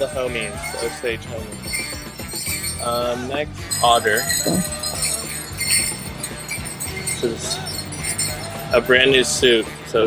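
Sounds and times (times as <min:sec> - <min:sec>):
background music: 0:00.0 - 0:10.0
leg bells jingling: 0:00.0 - 0:10.0.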